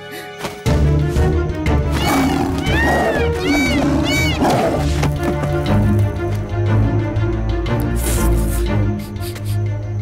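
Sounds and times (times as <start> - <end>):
background music: 0.0 - 10.0
cartoon tiger growling: 1.9 - 5.0.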